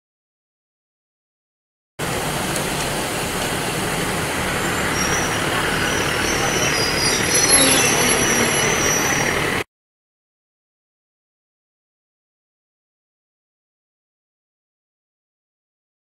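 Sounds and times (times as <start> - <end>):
train wheels rumbling on rail: 2.0 - 9.6
metallic wheel squeal: 4.2 - 9.6.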